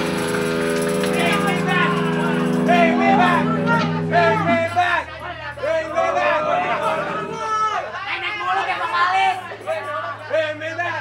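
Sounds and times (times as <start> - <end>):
low steady hum: 0.0 - 10.2
people talking: 1.1 - 11.0.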